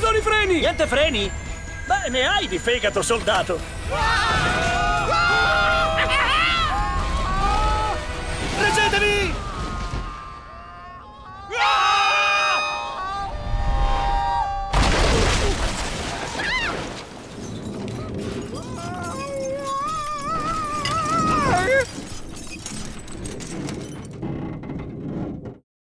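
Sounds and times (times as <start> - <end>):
film music: 0.0 - 14.7
glass shattering: 2.0 - 10.1, 14.8 - 24.0
loud crash: 3.1 - 10.5, 13.3 - 19.2
cartoon characters screaming: 3.9 - 8.0, 8.6 - 14.8, 16.2 - 16.8, 18.6 - 21.8.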